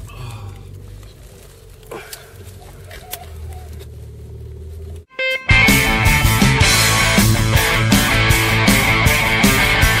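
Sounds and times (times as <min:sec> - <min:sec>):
car driving interior drone: 0:00.0 - 0:09.0.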